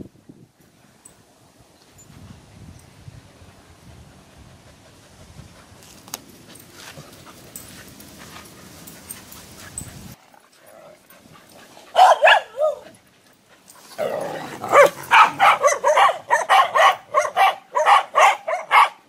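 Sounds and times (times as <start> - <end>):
dogs barking and yipping: 6.5 - 19.0.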